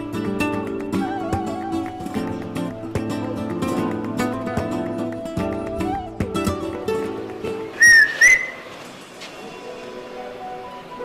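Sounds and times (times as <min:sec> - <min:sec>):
man whistling through fingers: 0:07.8 - 0:08.7.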